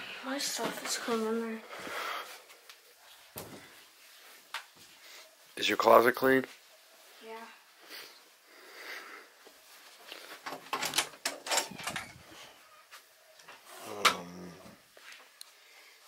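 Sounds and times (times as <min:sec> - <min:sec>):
rattle of clicks and knocks: 0:10.4 - 0:12.2
closet door opening: 0:10.4 - 0:12.5.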